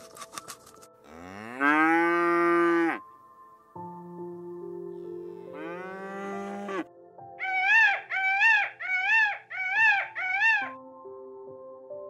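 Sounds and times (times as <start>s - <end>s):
cow mooing: 1.1s - 3.0s, 5.5s - 6.8s.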